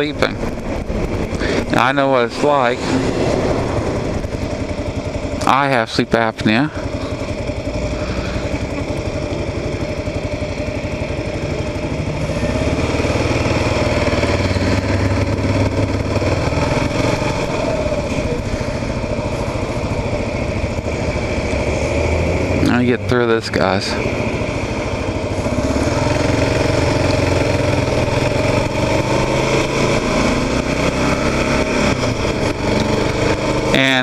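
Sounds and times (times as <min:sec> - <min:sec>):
motorcycle engine pulling away: 0:00.0 - 0:34.0.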